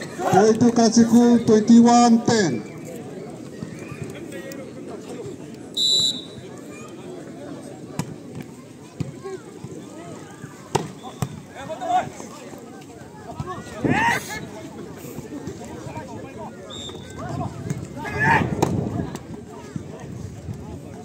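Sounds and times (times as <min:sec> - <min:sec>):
crowd chatter: 0:00.0 - 0:21.0
shrill referee whistle: 0:05.8 - 0:06.4, 0:16.7 - 0:17.1.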